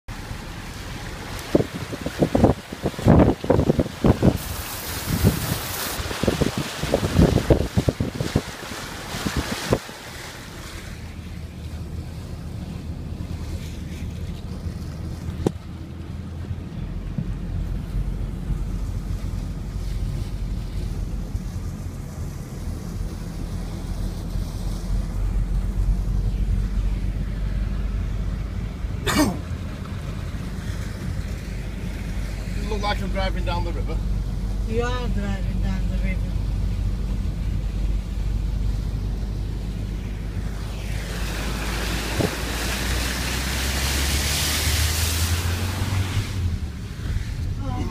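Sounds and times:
car engine humming: 0.0 - 47.9
car splashing through floodwater: 0.1 - 47.9
water washing along car: 0.1 - 47.9.

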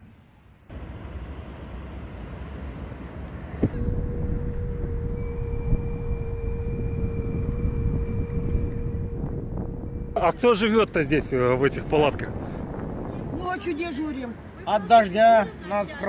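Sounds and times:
traffic rumble: 0.0 - 16.0
wind buffeting microphone: 3.5 - 14.6
steady tone: 3.6 - 13.4.

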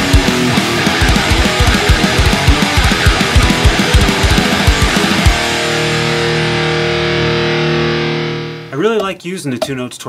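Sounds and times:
distorted electric guitar riff: 0.0 - 9.1
drums: 0.0 - 10.0.

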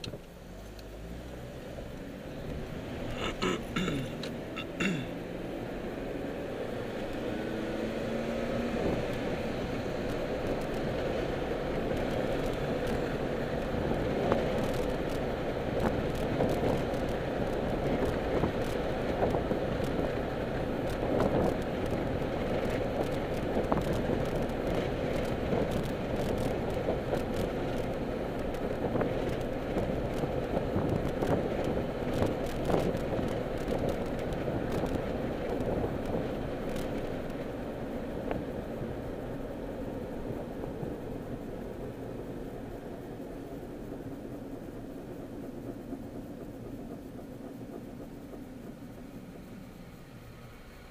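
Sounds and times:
car cabin road and engine rumble: 0.0 - 50.9
small clicks and rattles: 10.0 - 39.4.

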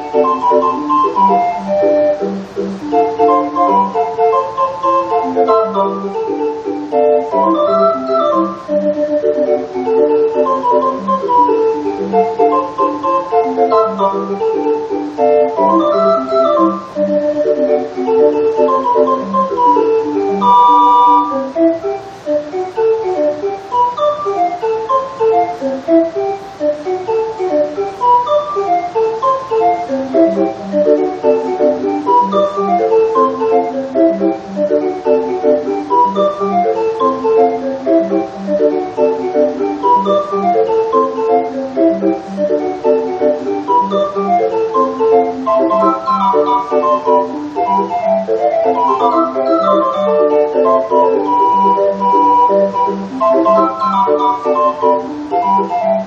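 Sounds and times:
hand-cranked street organ: 0.0 - 56.0.

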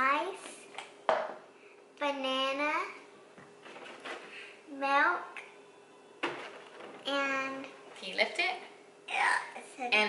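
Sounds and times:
young child speaking: 0.0 - 0.6, 2.0 - 3.0, 4.7 - 5.4, 7.1 - 7.8, 9.1 - 10.0.

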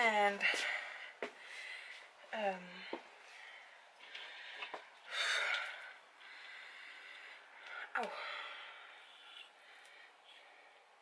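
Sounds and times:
person breathing: 0.4 - 11.0.

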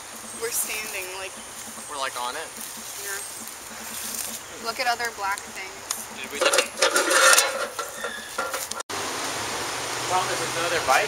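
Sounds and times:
steady outdoor hiss: 0.0 - 11.0
hands scraping and rustling: 5.1 - 8.8.

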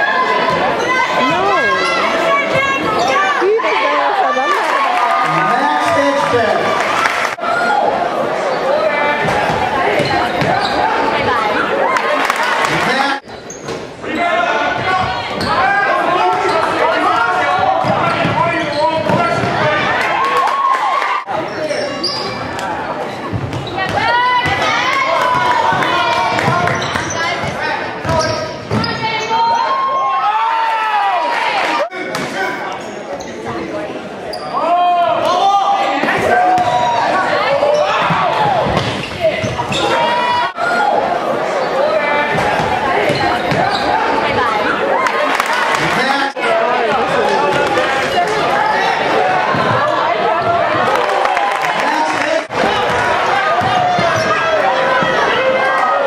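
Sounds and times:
voices echoing in hall: 0.0 - 56.0
sneakers squeaking on court: 9.4 - 11.0, 13.2 - 14.0, 21.4 - 24.6, 26.4 - 29.6, 36.6 - 40.2, 42.6 - 44.2
basketball bouncing: 23.3 - 24.7, 25.3 - 29.0.

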